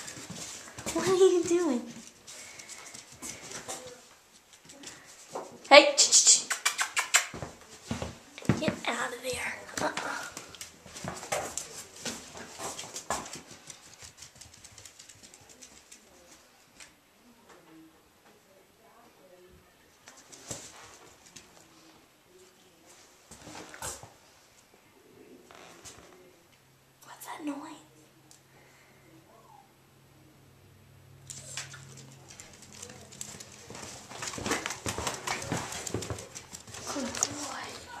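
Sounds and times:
dog claws clicking on wooden floor: 0:09.7 - 0:16.1, 0:31.3 - 0:37.8.

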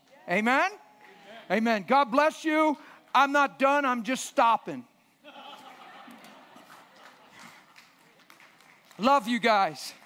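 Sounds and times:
faint scattered hand clapping: 0:06.1 - 0:10.0.

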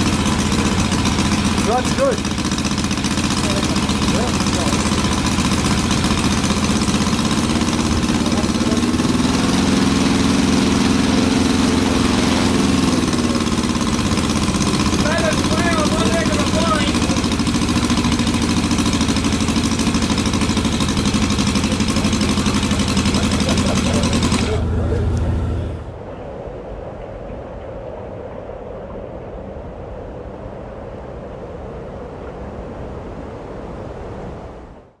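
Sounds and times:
model engine running: 0:00.0 - 0:25.9.

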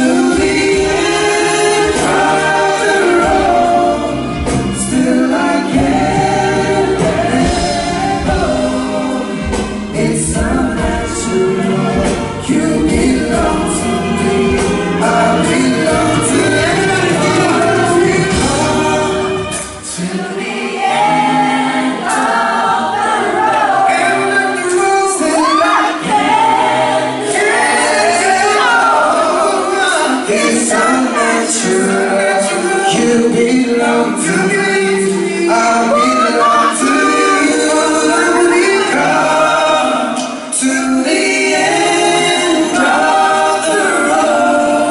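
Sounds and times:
live band playing: 0:00.0 - 0:44.9
male voices singing in harmony: 0:00.0 - 0:44.9.

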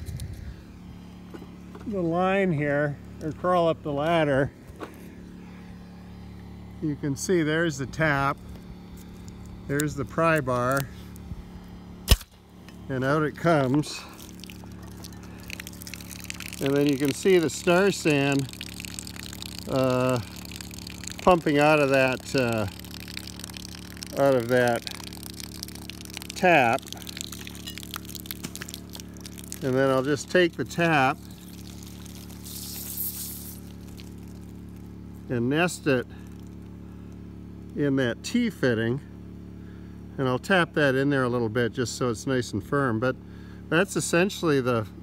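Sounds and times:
pump low hum: 0:00.0 - 0:45.0
liquid hissing spurt: 0:13.1 - 0:35.1.

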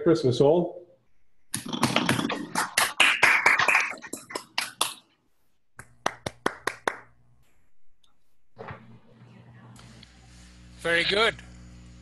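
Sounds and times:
hands clapping: 0:01.5 - 0:05.2, 0:05.8 - 0:07.2
faint steady hum: 0:05.8 - 0:12.0.

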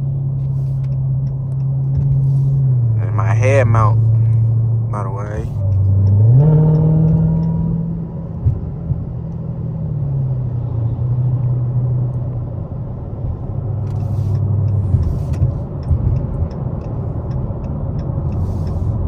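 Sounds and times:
car engine droning inside cabin: 0:00.0 - 0:19.0.

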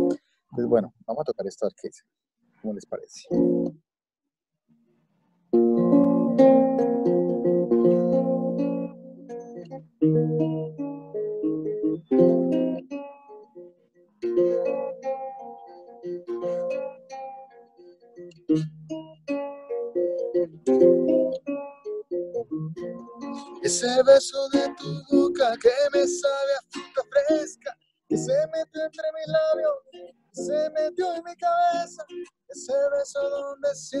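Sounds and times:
acoustic guitar playing chords: 0:00.0 - 0:00.9, 0:03.2 - 0:03.8, 0:05.5 - 0:34.0.

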